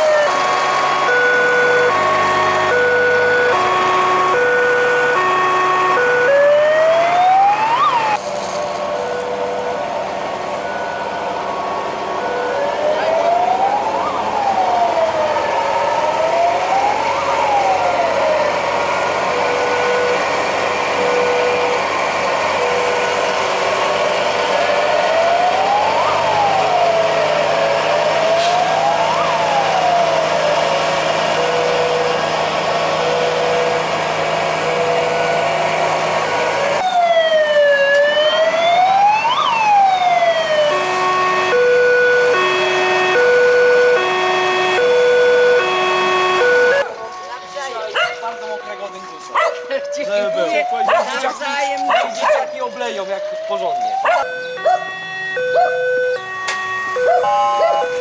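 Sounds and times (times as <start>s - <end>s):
fire engine siren wailing: 0.0s - 58.0s.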